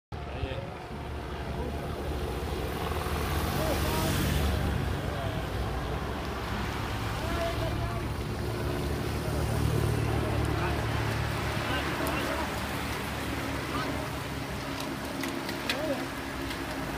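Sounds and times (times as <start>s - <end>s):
car passing: 0.2s - 16.9s
motorcycles passing: 0.2s - 16.9s.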